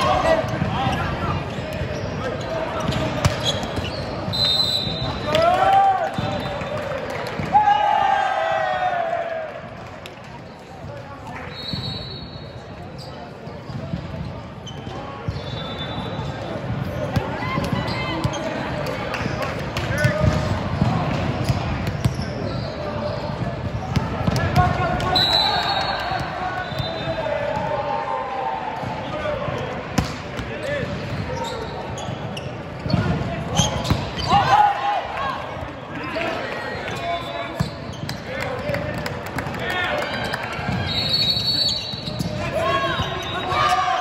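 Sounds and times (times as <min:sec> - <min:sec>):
players' voices and calls: 0:00.0 - 0:44.0.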